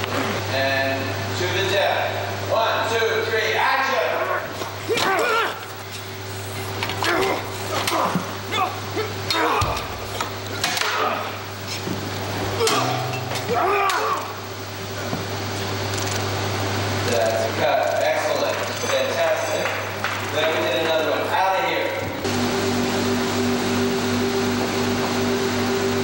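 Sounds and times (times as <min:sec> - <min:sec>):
steady low hum: 0:00.0 - 0:26.0
people shouting: 0:04.0 - 0:05.8, 0:06.9 - 0:10.0, 0:12.5 - 0:14.5.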